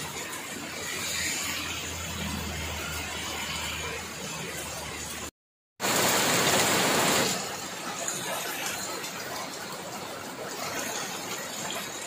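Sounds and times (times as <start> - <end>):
heavy rain on pavement: 0.0 - 12.0.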